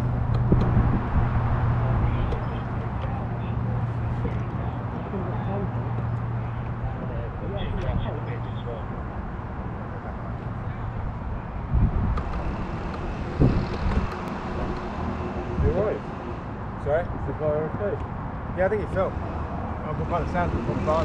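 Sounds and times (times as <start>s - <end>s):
steady low hum: 0.0s - 21.0s
faint voices talking: 0.8s - 21.0s
low thumps: 11.6s - 16.5s.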